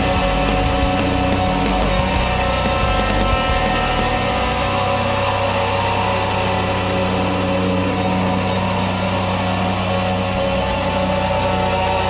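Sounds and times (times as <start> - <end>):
heavily distorted metal music: 0.0 - 12.0.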